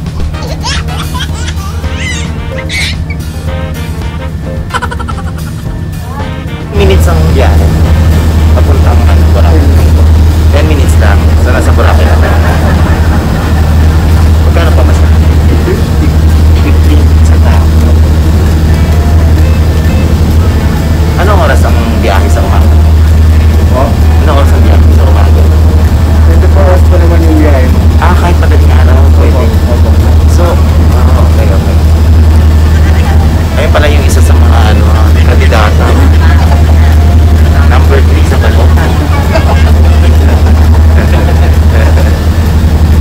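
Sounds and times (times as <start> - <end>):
ferry engine drone: 0.0 - 43.0
voices talking: 0.0 - 43.0.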